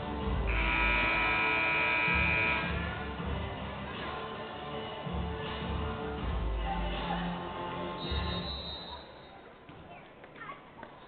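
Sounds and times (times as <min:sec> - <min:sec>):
background music from loudspeakers: 0:00.0 - 0:09.8
buzzy scoreboard horn blast: 0:00.4 - 0:03.0.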